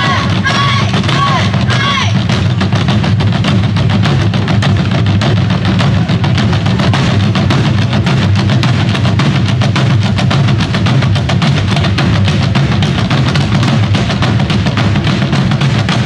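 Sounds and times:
drum ensemble playing fast rhythm: 0.0 - 16.0.

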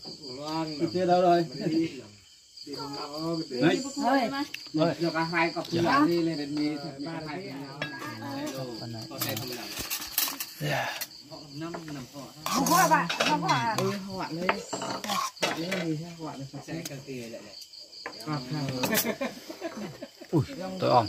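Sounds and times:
crickets chirping: 0.0 - 21.0
voices: 0.0 - 21.0
metal spoon scraping metal bowl: 12.4 - 14.0, 14.6 - 15.8.

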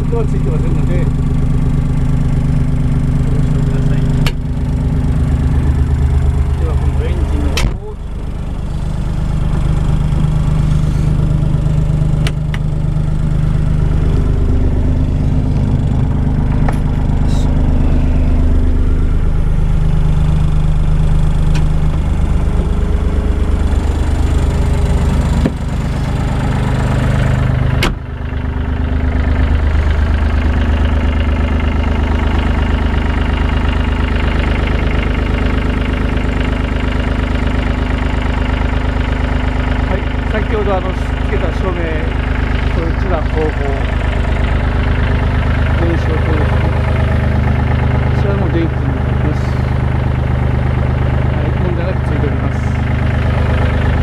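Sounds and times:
diesel engine idling: 0.0 - 54.0.

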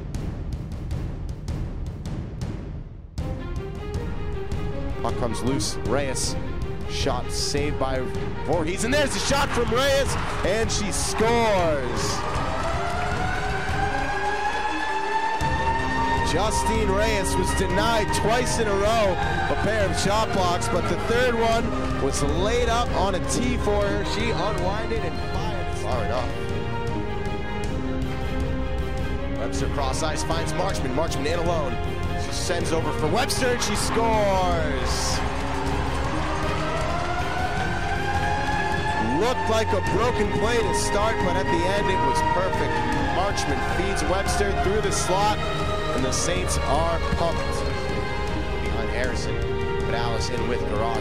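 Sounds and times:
crowd cheering: 8.5 - 28.7, 29.4 - 51.0
arena goal siren: 10.2 - 26.3, 33.1 - 46.4.

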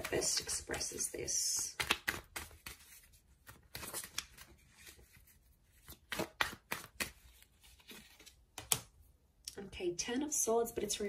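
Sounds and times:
cards flicking and tapping: 1.6 - 5.0, 5.8 - 8.9.

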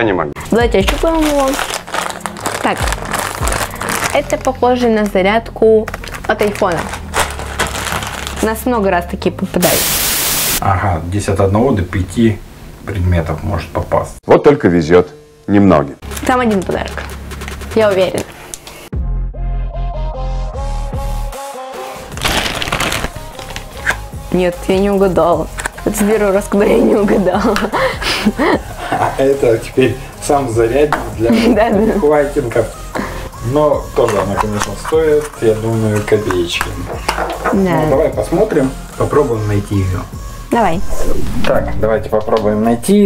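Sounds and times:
background music: 0.0 - 11.4, 15.2 - 43.0
mailer bag crinkling: 0.4 - 5.2, 5.8 - 8.6, 22.1 - 24.0.

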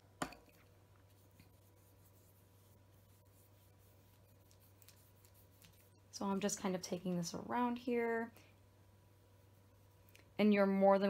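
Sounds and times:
low steady hum: 0.0 - 11.0
paintbrush strokes on wood: 1.0 - 7.2.

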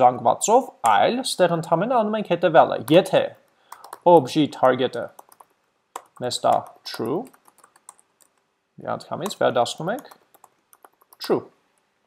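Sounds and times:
man talking: 0.0 - 3.4, 4.0 - 5.2, 6.2 - 7.3, 8.8 - 10.2, 11.2 - 11.6.

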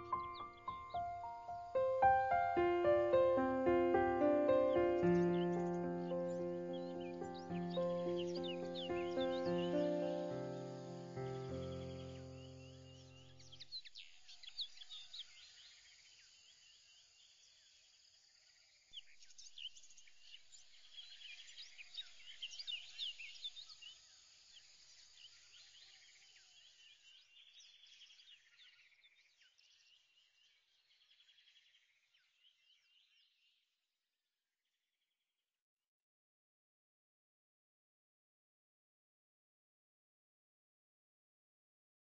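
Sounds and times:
birds chirping and trilling: 0.0 - 15.6.

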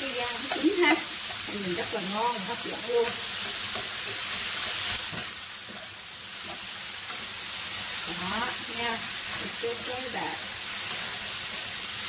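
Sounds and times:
meat sizzling in a pan: 0.0 - 12.0.

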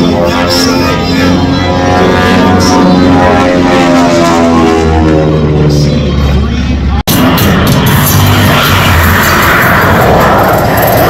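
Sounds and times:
propeller airplane engine drone: 0.0 - 11.0.

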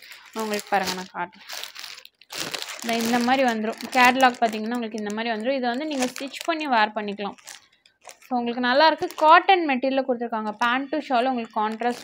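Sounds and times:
plastic packaging crinkling: 0.0 - 9.5, 10.5 - 12.0.

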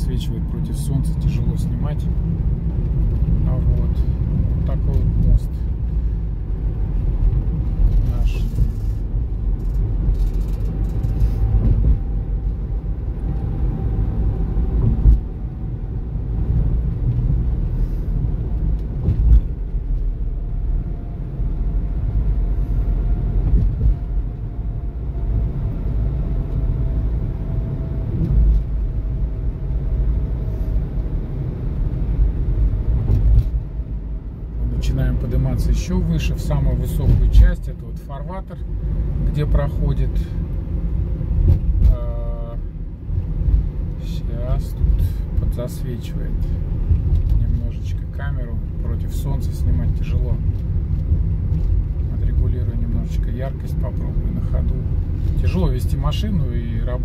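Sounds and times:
car road and tyre rumble: 0.0 - 57.0.

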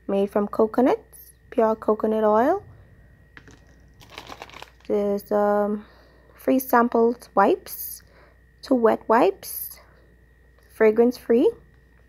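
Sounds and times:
plastic pack crinkling: 3.4 - 4.9.

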